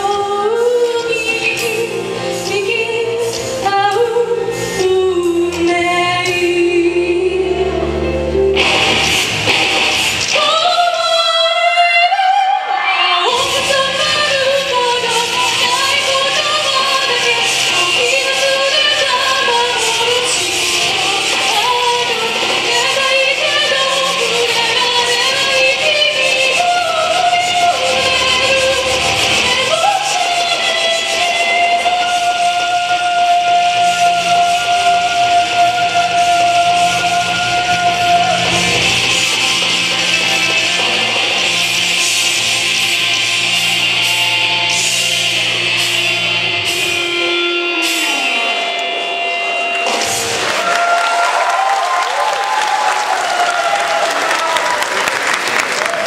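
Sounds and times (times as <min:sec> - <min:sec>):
backing music: 0:00.0 - 0:56.0.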